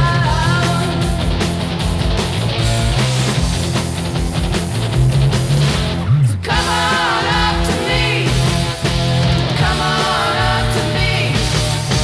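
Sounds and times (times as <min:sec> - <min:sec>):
loud rock band music: 0:00.0 - 0:12.0.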